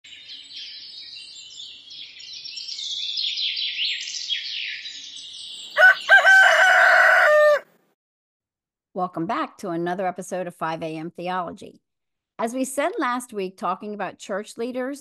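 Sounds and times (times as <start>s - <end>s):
small birds chirping: 0.1s - 7.0s
rooster crowing: 5.7s - 7.8s.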